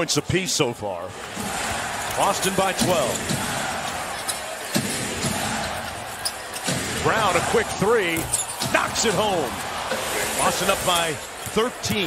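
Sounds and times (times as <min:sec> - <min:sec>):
arena crowd noise: 0:00.0 - 0:12.0.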